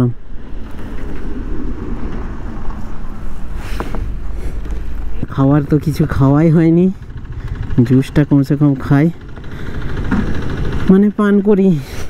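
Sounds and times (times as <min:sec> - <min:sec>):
motorcycle engine idling: 0:04.6 - 0:12.0.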